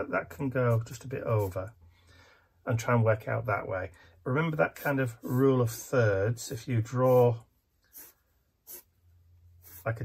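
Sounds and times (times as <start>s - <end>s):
pencil scratching on paper: 6.9s - 10.0s.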